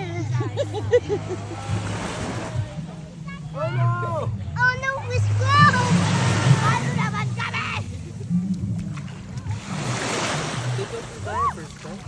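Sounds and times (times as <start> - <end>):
wave hissing: 4.0 - 8.8
small waves washing on sand: 4.8 - 12.0.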